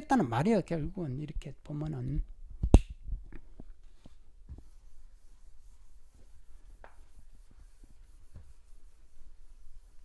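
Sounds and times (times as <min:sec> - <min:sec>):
eraser wiping across chalkboard: 0:03.8 - 0:10.0.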